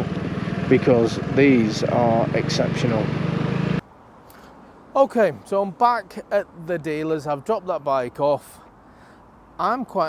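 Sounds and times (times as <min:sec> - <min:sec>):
scooter engine idling: 0:00.0 - 0:03.8
faint outdoor background: 0:00.0 - 0:10.0.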